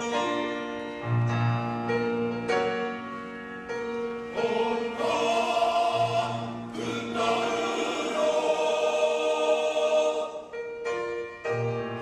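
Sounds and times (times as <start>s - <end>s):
men's choir singing a hymn: 4.3s - 10.7s.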